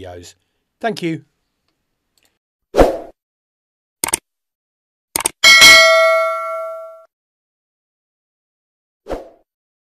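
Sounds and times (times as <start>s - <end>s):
bright bell ding: 5.4s - 7.1s.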